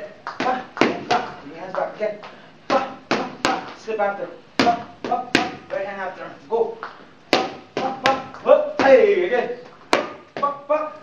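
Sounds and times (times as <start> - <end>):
boxing gloves smacking pads: 0.4 - 1.4, 2.7 - 3.8, 4.6 - 5.8, 7.3 - 9.1, 9.9 - 10.5
person calling out: 2.7 - 3.8, 7.8 - 9.4, 10.4 - 11.0.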